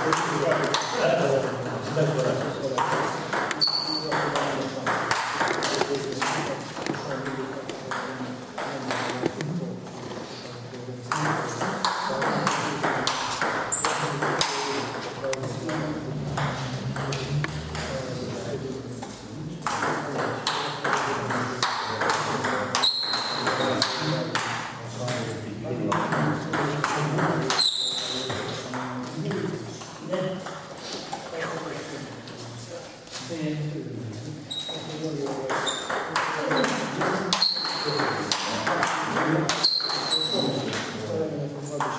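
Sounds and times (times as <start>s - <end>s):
voices talking: 0.0s - 41.9s.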